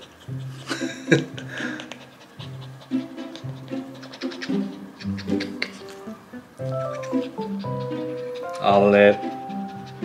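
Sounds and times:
dog panting: 0.0s - 10.0s
soft background music: 0.1s - 10.0s.

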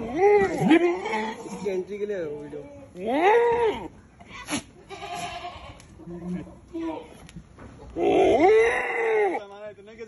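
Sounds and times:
goat bleating: 4.5s - 7.2s.

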